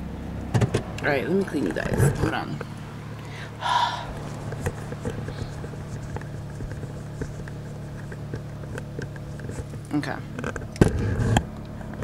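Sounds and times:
phone rubbing and knocking: 4.1 - 9.8.

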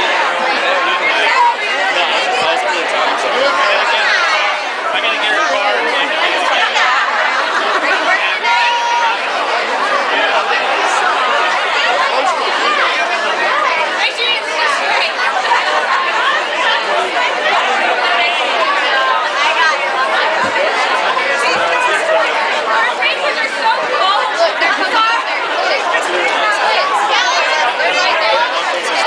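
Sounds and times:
crowd chatter: 0.0 - 29.0.

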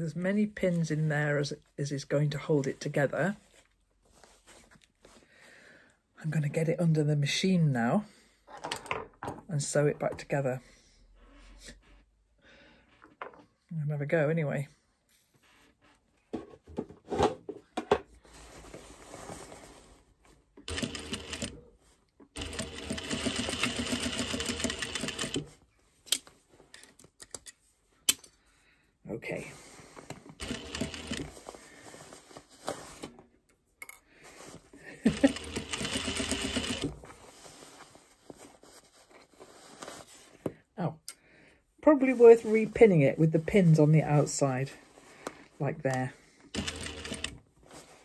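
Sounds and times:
fabric rustling: 3.3 - 5.2, 18.2 - 20.5, 31.3 - 33.2, 37.0 - 40.5, 47.5 - 48.0
sewing machine stitching: 20.7 - 21.6, 22.4 - 25.5, 30.4 - 31.4, 35.0 - 37.0, 46.6 - 47.4.

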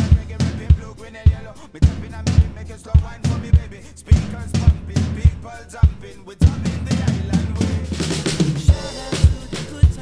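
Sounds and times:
acoustic drum kit: 0.0 - 10.0
pop-reggae backing track: 0.0 - 10.0.

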